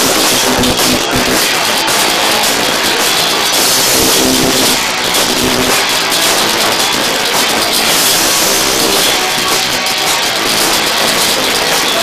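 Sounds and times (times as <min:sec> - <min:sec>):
live punk rock band: 0:00.0 - 0:12.0.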